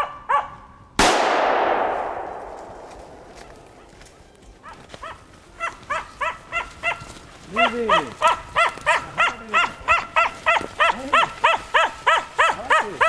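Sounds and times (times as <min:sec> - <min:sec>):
dog barking: 0:00.0 - 0:00.7, 0:04.6 - 0:13.0
gunshot echoing through forest: 0:01.0 - 0:03.9.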